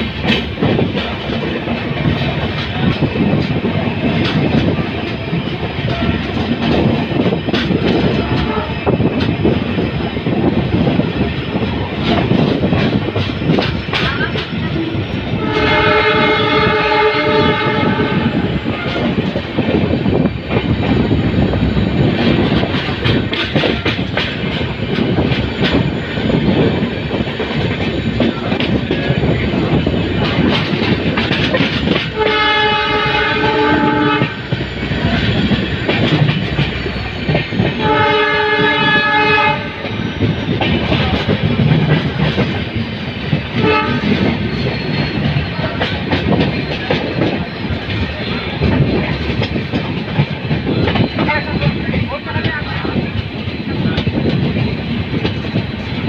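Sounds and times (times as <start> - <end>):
train wheels rumbling on rails: 0.0 - 56.0
train horn blasts: 8.3 - 8.8, 15.3 - 19.2, 32.1 - 34.5, 37.8 - 39.9, 43.6 - 44.3.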